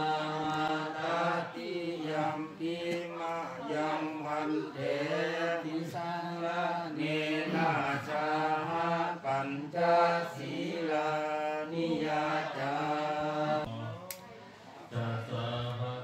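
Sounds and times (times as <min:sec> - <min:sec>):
monks chanting in unison: 0:00.0 - 0:14.0, 0:14.9 - 0:16.0.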